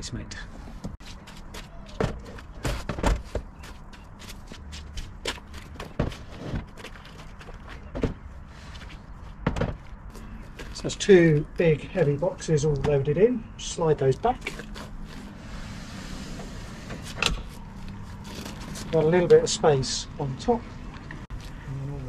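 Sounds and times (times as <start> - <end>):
shuffling steps: 0.6 - 13.0
plastic boxes knocking and thudding: 1.8 - 3.6, 5.6 - 8.2, 9.4 - 10.0.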